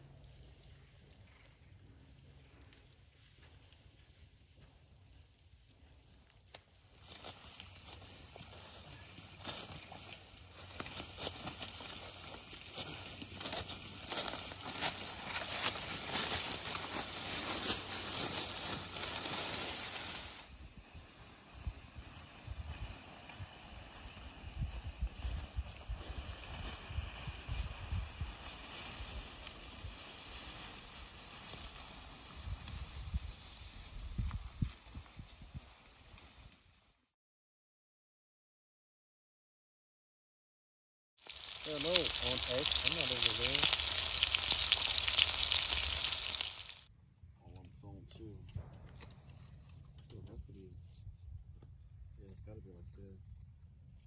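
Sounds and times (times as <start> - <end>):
footsteps crunching dry leaves: 5.7 - 36.8, 41.2 - 46.9.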